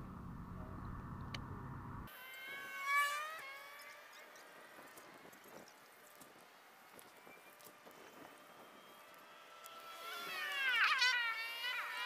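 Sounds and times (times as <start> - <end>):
low rumbling handling noise: 0.0 - 2.1
fishing reel spool whining: 8.5 - 12.0.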